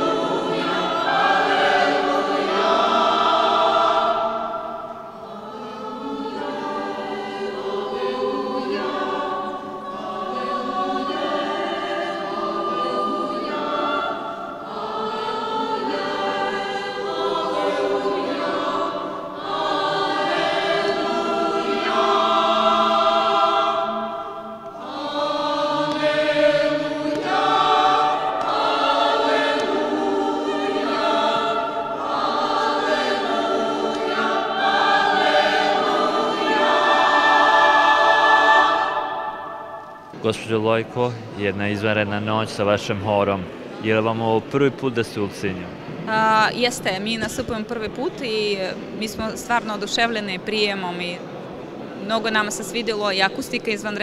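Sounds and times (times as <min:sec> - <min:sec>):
choir singing sacred music: 0:00.0 - 0:54.0.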